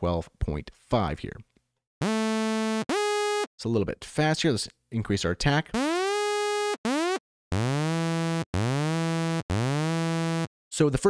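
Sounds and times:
synthesizer sawtooth notes sliding up: 0:02.0 - 0:03.5, 0:05.8 - 0:10.5.

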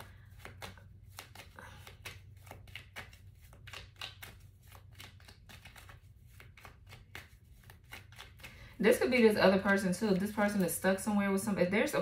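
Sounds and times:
cards being shuffled: 0:00.0 - 0:11.0
woman speaking: 0:08.8 - 0:12.0.

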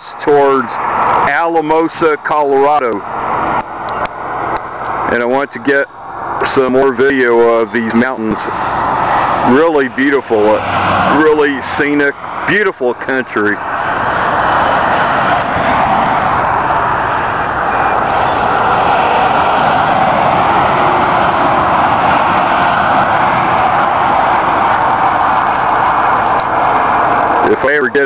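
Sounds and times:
highway traffic tyre hiss: 0:00.0 - 0:28.0.

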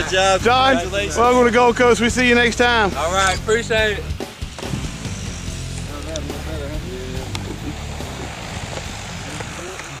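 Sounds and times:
low outdoor rumble: 0:00.0 - 0:10.0
faint voices: 0:05.8 - 0:10.0.

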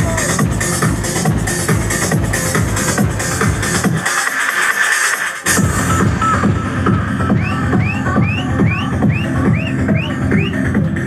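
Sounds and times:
kick drum and bass: 0:00.0 - 0:04.1, 0:05.4 - 0:11.0
techno music: 0:00.0 - 0:11.0.

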